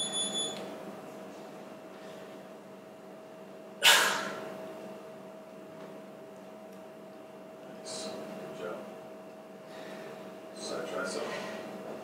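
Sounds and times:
short high electronic beep: 0.0s - 0.6s
steady hum: 0.0s - 12.0s.

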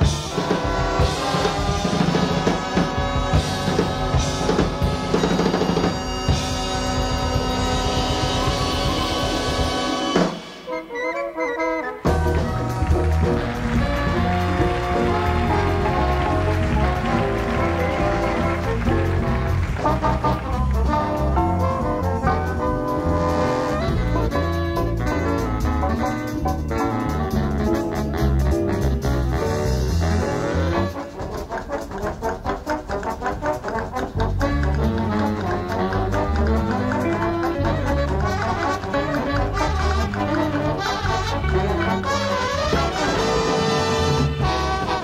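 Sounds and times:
drums and cymbals: 0.0s - 11.0s, 12.0s - 45.0s
big band jazz playing: 0.0s - 45.0s
low bass: 12.1s - 30.8s.

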